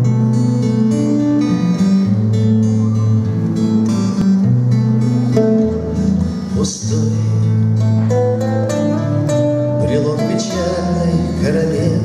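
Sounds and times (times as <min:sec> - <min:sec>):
acoustic guitars playing: 0:00.0 - 0:12.0.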